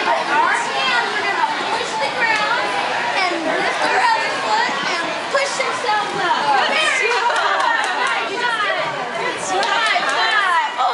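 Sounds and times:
adults and children chattering: 0:00.0 - 0:10.9.

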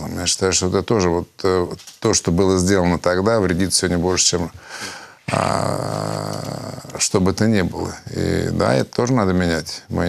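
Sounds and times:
man's drawn-out hesitation sound: 0:05.3 - 0:07.1.

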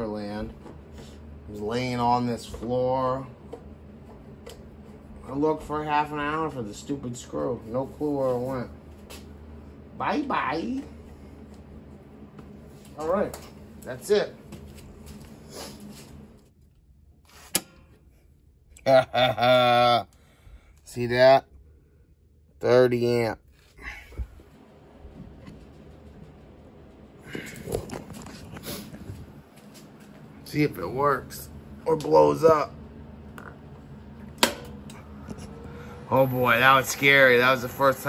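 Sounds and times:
low steady hum: 0:00.0 - 0:38.0
power switch snap: 0:17.4 - 0:17.9, 0:34.3 - 0:35.0.

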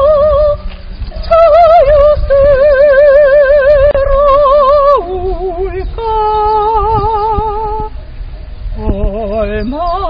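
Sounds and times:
woman singing long note: 0:01.2 - 0:07.9.

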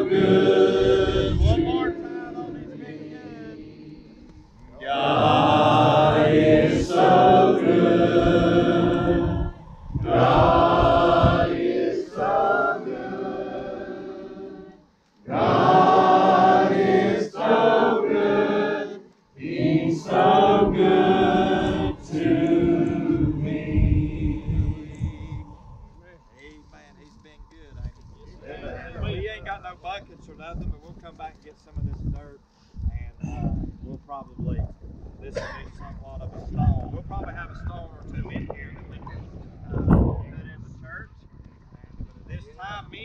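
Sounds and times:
crowd singing unaccompanied: 0:00.0 - 0:25.9.

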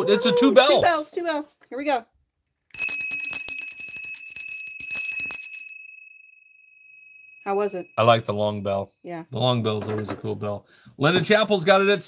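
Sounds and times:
bell ringing: 0:02.8 - 0:08.2.

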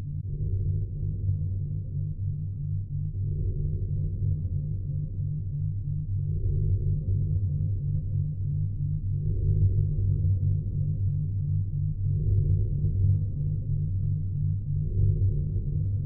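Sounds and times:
dark background music with pulsing bass: 0:00.0 - 0:16.0.

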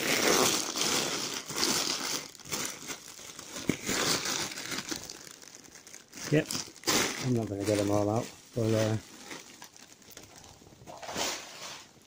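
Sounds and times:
plastic bags crinkling: 0:00.0 - 0:12.0.

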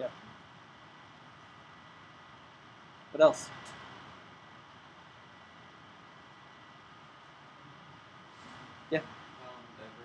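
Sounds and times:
faint thin whine: 0:00.0 - 0:10.0
room tone hiss: 0:00.0 - 0:10.0.

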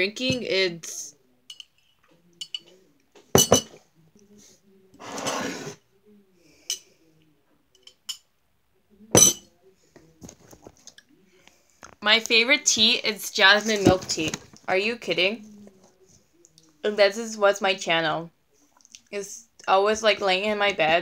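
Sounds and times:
mug knocking on table: 0:03.4 - 0:03.7
ceramic mug clinking: 0:03.4 - 0:03.8, 0:09.2 - 0:09.5.

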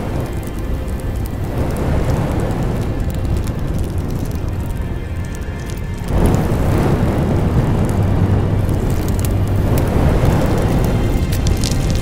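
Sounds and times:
fire crackling with rumble: 0:00.0 - 0:12.0
music: 0:00.0 - 0:12.0.

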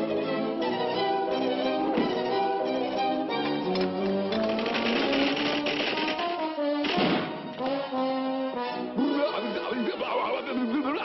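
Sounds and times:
orchestral cartoon music with brass: 0:00.0 - 0:11.0.

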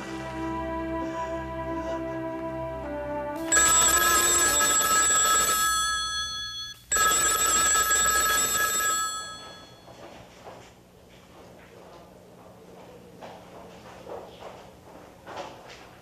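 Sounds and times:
soft music: 0:00.0 - 0:04.6
telephone bell ringing: 0:03.4 - 0:10.0.

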